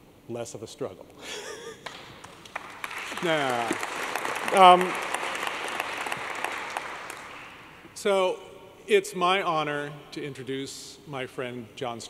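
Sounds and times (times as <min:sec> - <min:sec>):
audience applauding: 0:01.8 - 0:07.8.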